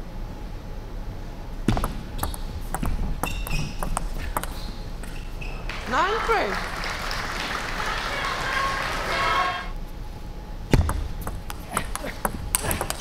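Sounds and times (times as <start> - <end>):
table tennis ball clicks: 1.8 - 5.2
short high squeaks: 3.2 - 3.9, 4.5 - 5.8.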